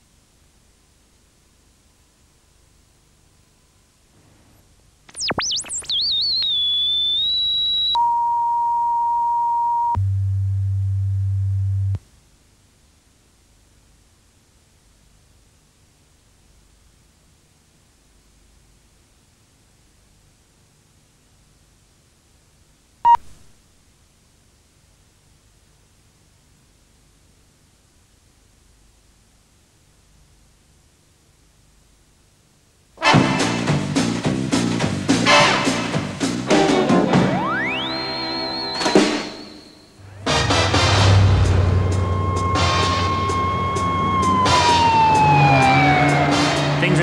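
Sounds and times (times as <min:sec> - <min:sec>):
faint hiss: 0:00.0 - 0:06.0
electronic sine tones: 0:05.1 - 0:12.0, 0:37.2 - 0:40.3, 0:41.4 - 0:46.1.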